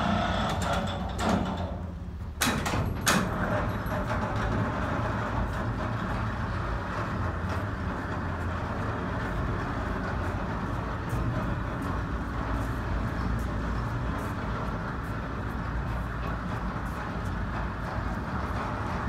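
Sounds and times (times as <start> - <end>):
machinery rumbling: 0.0 - 19.0.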